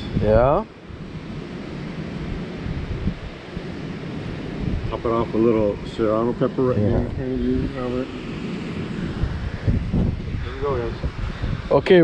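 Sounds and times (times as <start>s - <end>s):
surf: 0.0s - 12.0s
wind buffeting microphone: 0.0s - 12.0s.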